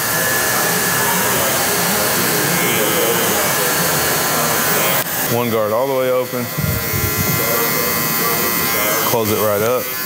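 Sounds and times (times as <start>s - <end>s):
electric hair clipper running: 0.0s - 10.0s.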